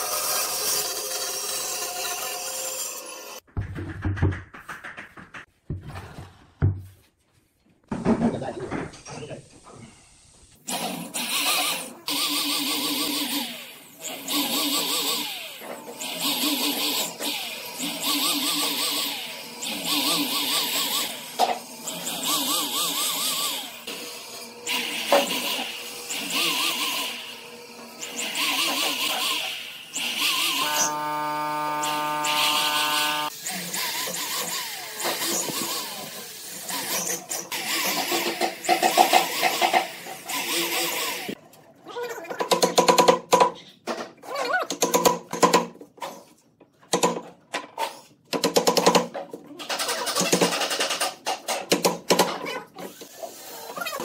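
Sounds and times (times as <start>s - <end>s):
electric drill boring into wood: 0.0s - 3.4s, 10.7s - 41.4s.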